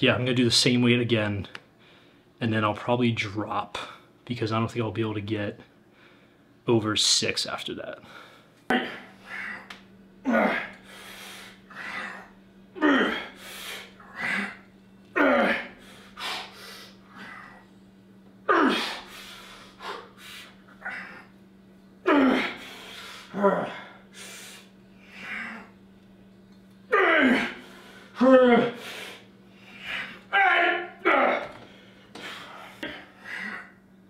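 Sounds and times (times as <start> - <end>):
man grunting and exhaling: 8.7 - 10.8, 11.7 - 13.4, 15.2 - 16.5, 18.5 - 19.1, 22.1 - 24.0, 26.9 - 28.9, 29.8 - 31.6.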